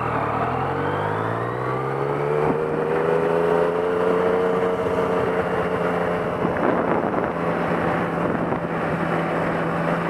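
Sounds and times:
motorcycle engine running: 0.0 - 10.0
wind noise on microphone: 2.3 - 10.0.

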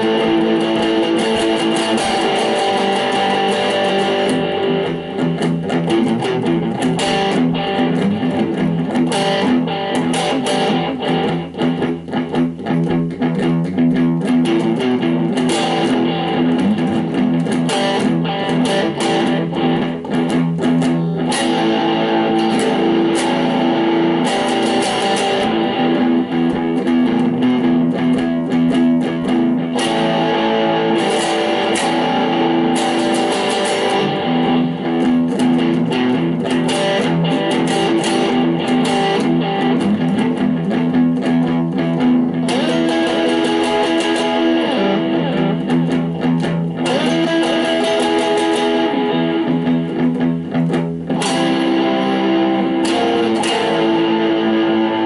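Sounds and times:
electric guitar playing slow blues: 0.0 - 55.0.

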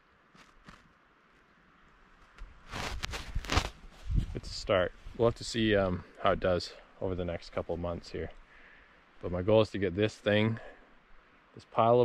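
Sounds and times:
footsteps: 2.2 - 4.4.

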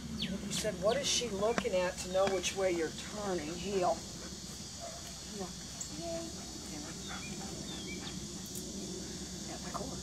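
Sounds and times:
insects chorus: 0.0 - 10.0.

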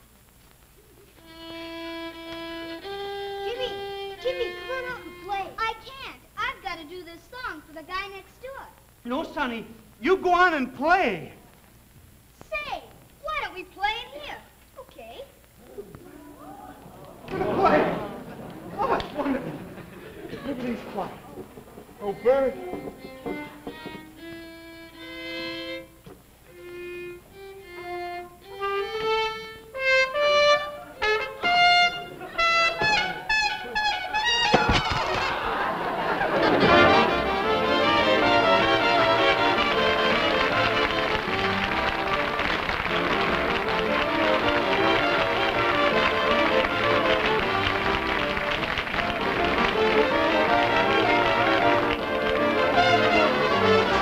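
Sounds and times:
solo violin notes: 1.2 - 5.6, 22.0 - 34.7, 36.6 - 54.0
orchestra with brass: 26.5 - 54.0.

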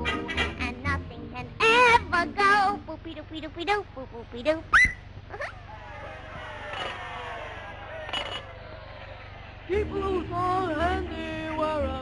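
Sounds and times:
old film soundtrack hum: 0.0 - 12.0.

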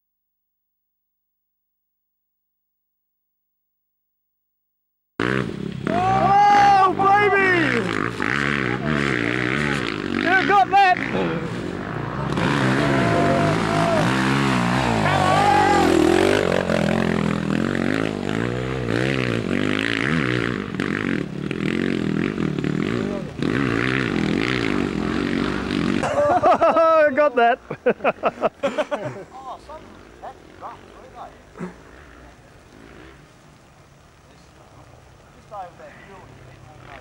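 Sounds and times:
dirt bike engine revving: 5.2 - 33.6.

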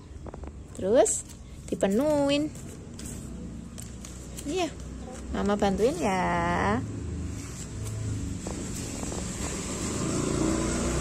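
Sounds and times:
engine rumble: 0.0 - 11.0.

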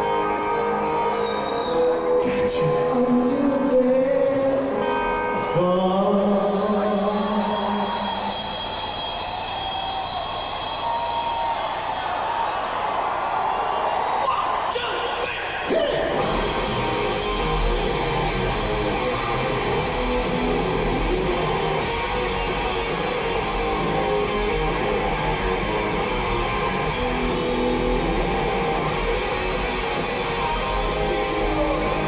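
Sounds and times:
hard rock band playing: 15.9 - 32.0.

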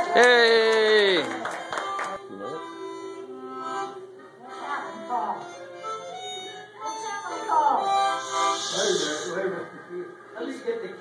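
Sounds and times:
people talking: 0.0 - 3.0, 4.4 - 5.5, 8.7 - 11.0
harmonica playing held notes: 0.8 - 9.7.

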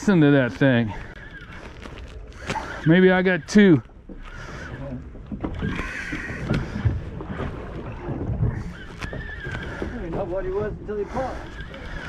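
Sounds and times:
water against boat hull: 0.0 - 12.0
fishing reel cranking: 11.1 - 12.0.

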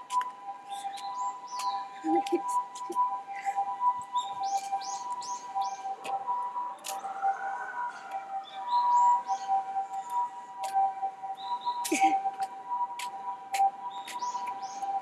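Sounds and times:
small birds chirping: 0.7 - 7.1, 8.4 - 10.2, 11.4 - 12.0, 13.8 - 15.0.

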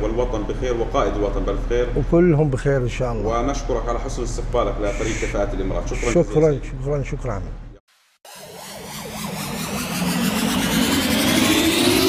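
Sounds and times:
engine-like drone: 8.3 - 12.0
faint rising whine: 8.3 - 12.0.

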